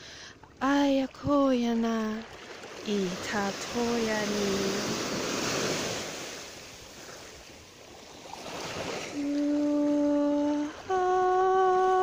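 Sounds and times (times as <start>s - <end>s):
person humming held notes: 9.2s - 12.0s.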